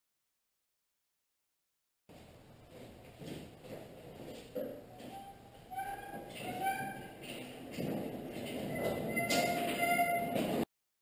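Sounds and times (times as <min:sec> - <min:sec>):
shuffling steps: 0:02.1 - 0:10.6
crane casters squealing: 0:05.0 - 0:10.7.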